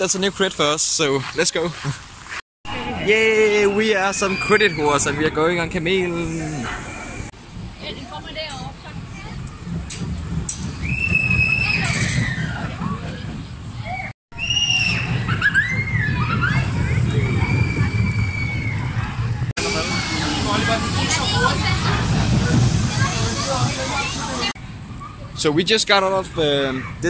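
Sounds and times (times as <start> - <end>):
high squeals and shrieks: 2.7 - 7.3, 10.8 - 13.0, 13.8 - 24.5
roller coaster rumble on track: 2.7 - 27.0.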